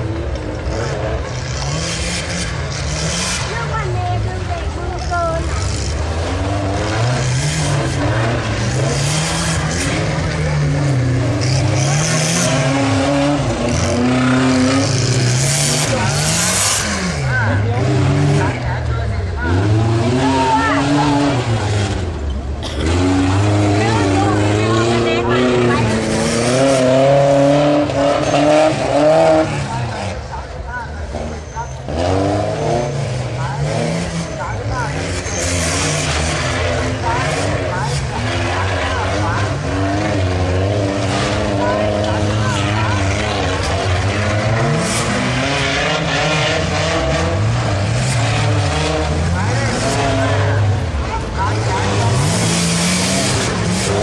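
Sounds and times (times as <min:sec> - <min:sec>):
off-road truck engines revving: 0:00.0 - 0:54.0.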